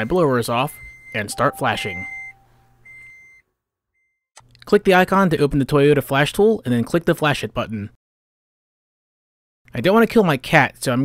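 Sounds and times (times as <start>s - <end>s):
high-pitched electronic beeps: 1.2s - 2.4s
fainter lower tone: 1.2s - 2.6s.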